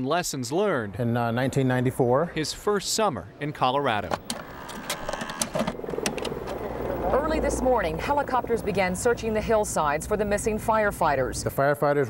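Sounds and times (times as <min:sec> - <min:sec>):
sharp mechanical clicks: 0:04.1 - 0:06.6
tape deck whirring: 0:04.1 - 0:07.4.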